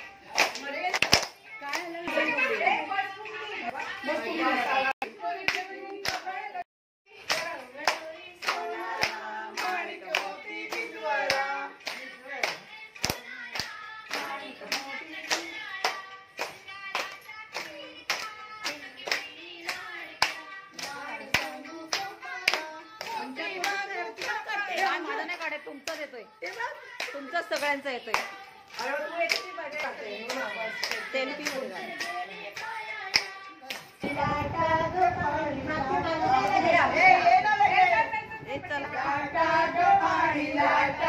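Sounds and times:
women clapping in rhythm: 0:00.0 - 0:35.1
voices singing: 0:00.0 - 0:41.0.

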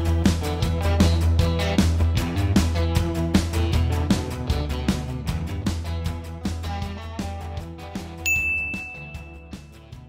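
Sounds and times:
background music with beat: 0:00.0 - 0:10.0
notification bell ding: 0:08.3 - 0:09.8.

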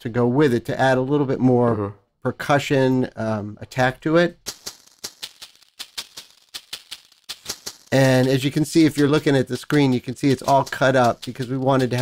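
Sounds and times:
maraca hits in even rhythm: 0:04.4 - 0:12.0.

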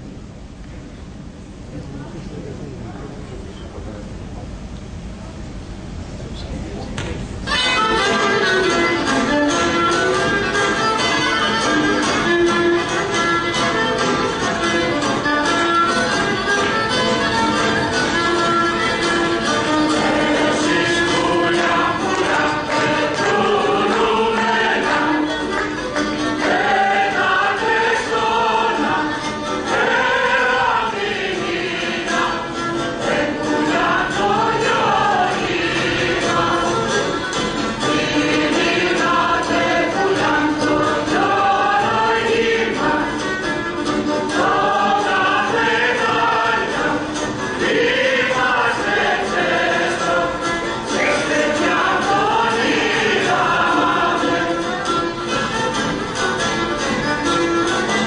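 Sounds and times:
group singing folk song: 0:07.5 - 0:58.0.

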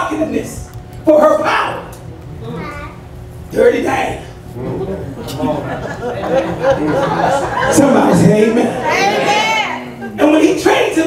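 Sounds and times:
man preaching into microphone: 0:00.0 - 0:01.9, 0:10.2 - 0:11.0.

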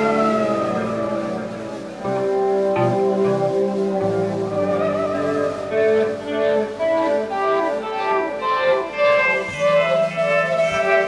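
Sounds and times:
band holding a chord: 0:00.0 - 0:11.0
electric guitar sliding note: 0:00.0 - 0:11.0.

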